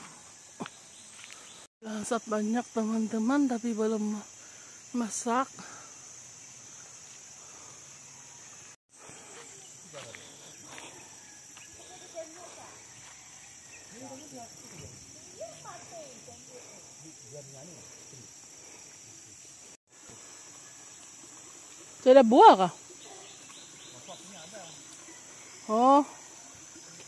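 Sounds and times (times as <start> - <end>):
high-pitched insect chorus: 0.0 - 27.0.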